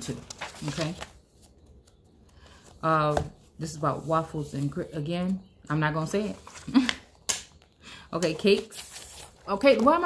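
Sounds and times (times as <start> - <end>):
paper pages rustling: 0.0 - 5.4, 6.0 - 7.2, 8.2 - 10.0.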